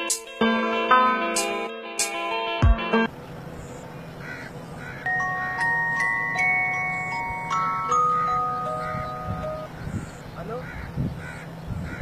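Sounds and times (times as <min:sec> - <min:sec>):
phone ringtone chime melody: 0:05.0 - 0:09.7
faint bird-like calls: 0:08.5 - 0:12.0.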